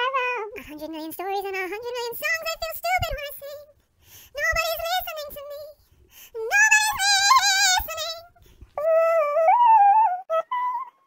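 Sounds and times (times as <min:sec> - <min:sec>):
sped-up woman singing: 0:04.3 - 0:11.0.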